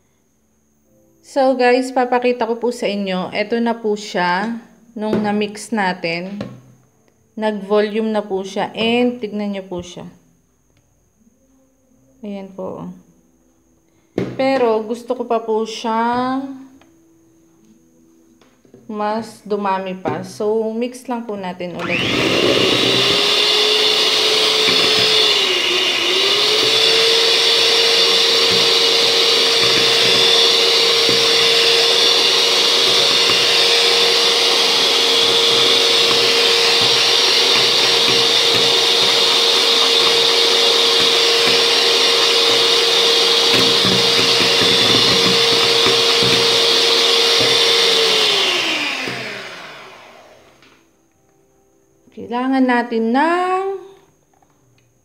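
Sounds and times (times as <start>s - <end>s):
electric hand mixer whining: 21.8s - 50.7s.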